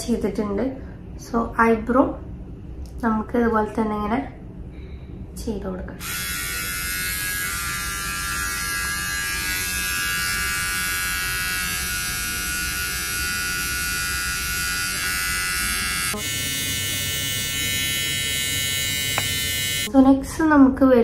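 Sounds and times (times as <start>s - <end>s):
electric trimmer buzzing: 6.0s - 19.9s.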